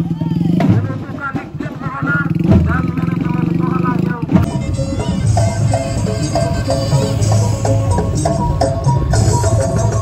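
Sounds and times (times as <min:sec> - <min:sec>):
people's voices: 0:00.0 - 0:09.8
vehicle engine running: 0:00.0 - 0:10.0.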